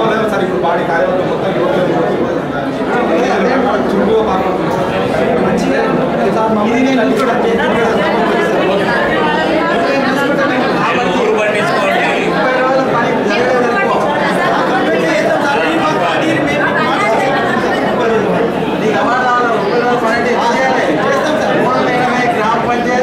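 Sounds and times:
people chattering: 0.0s - 23.0s.

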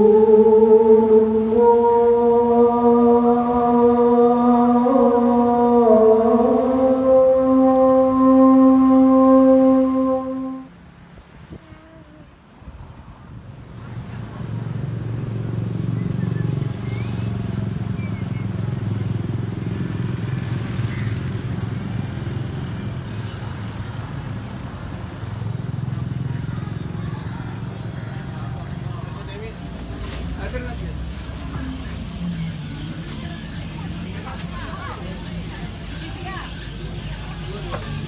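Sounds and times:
held musical note: 0.0s - 10.8s
motorcycle and car engines passing: 0.0s - 12.2s, 13.3s - 38.0s.

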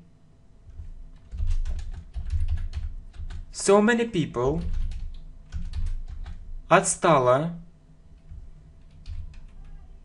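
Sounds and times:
computer keyboard typing: 0.7s - 3.5s, 4.5s - 6.4s, 8.2s - 9.8s.

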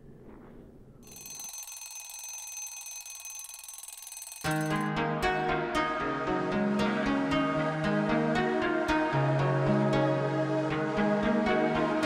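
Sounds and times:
high steady alarm ringing: 1.0s - 4.9s.

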